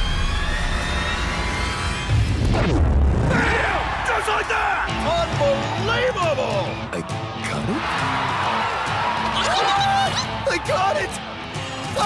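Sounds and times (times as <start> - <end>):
action music: 0.0 - 12.0
wordless shouts: 3.2 - 11.2
crowd cheering: 3.2 - 12.0.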